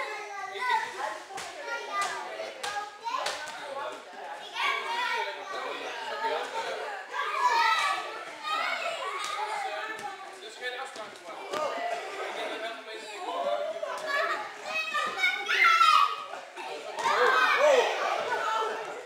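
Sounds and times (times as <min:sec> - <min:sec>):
children chattering: 0:00.0 - 0:19.0.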